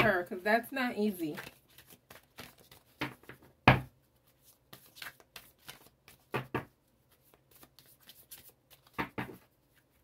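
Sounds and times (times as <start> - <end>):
cards being shuffled: 1.1 - 10.0.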